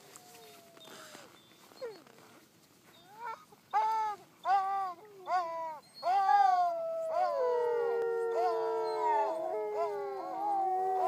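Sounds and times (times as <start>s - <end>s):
huskies howling: 5.3s - 11.0s.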